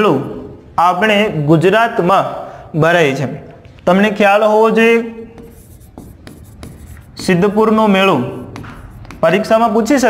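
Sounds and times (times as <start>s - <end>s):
pen tapping on a board: 5.3s - 9.5s
pen scratching on a board: 5.3s - 9.8s.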